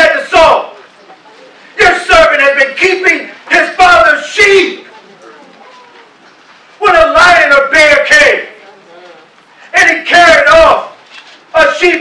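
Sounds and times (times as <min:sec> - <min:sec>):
faint room noise: 0:00.0 - 0:12.0
man speaking through microphone: 0:01.8 - 0:04.9, 0:06.8 - 0:12.0.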